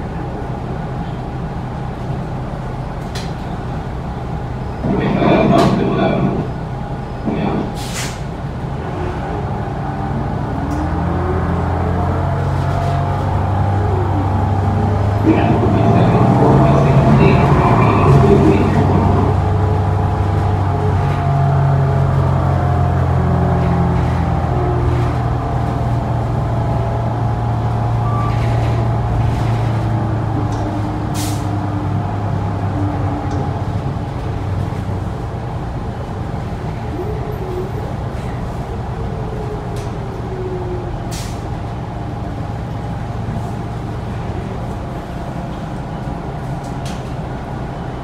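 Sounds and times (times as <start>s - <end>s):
bus engine droning: 0.0s - 48.0s.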